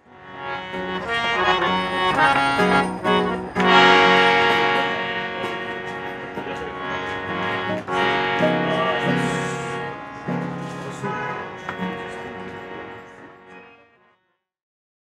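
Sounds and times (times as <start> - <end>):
harmonium playing chords: 0.0 - 14.1.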